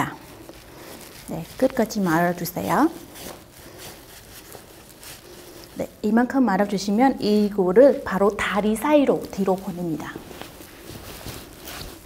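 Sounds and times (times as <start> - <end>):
low room noise: 0.0 - 12.0
silk cloth rustling: 0.0 - 12.0.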